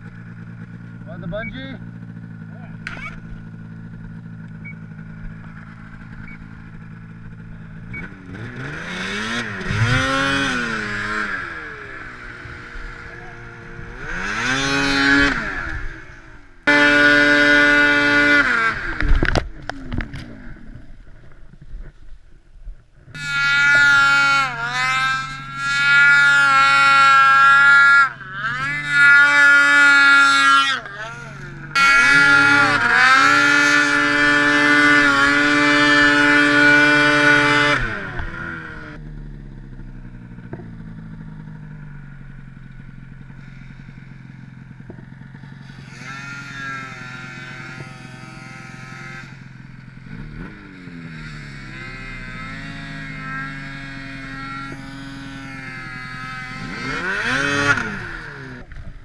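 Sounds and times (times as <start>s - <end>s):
snowmobile engine revving and idling: 0.0s - 22.0s, 23.0s - 59.0s.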